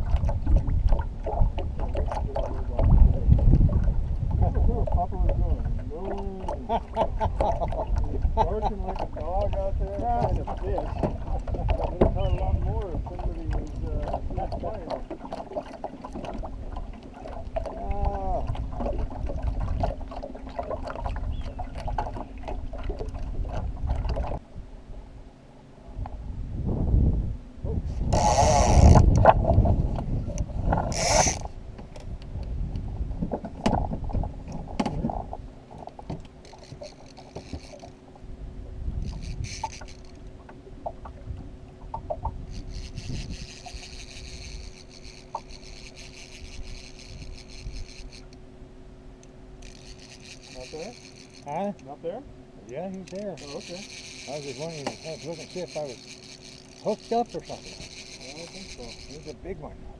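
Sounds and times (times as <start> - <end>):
outboard motor humming: 0.0 - 59.9.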